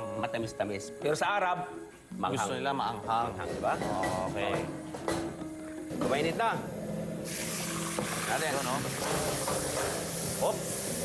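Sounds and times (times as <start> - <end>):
meat sizzling in hot oil: 7.2 - 11.0.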